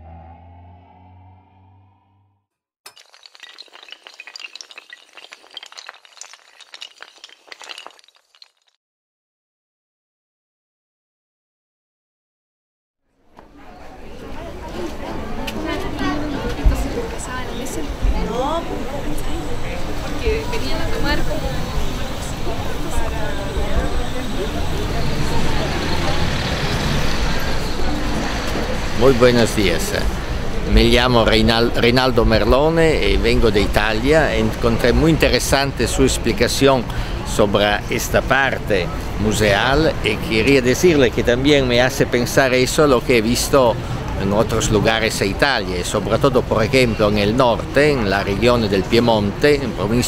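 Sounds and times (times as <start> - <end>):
passing cars rumbling: 0.0 - 2.3, 24.0 - 31.2
glassy pieces clattering: 2.9 - 8.8.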